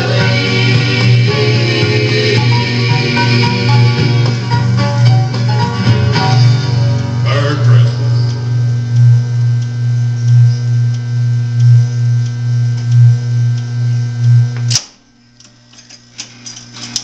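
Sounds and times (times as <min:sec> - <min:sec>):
jukebox speaker hum: 0:00.0 - 0:17.0
sharp click: 0:14.6 - 0:15.6.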